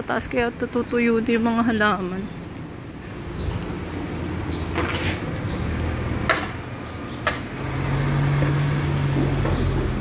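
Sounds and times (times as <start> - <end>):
car engine running: 2.7 - 10.0.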